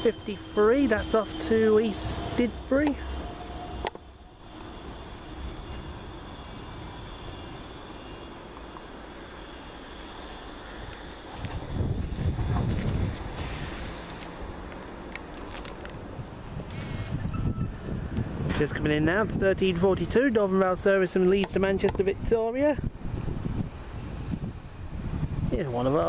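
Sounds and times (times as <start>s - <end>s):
low rumble: 0.0s - 19.8s
tram rumble: 0.0s - 26.0s.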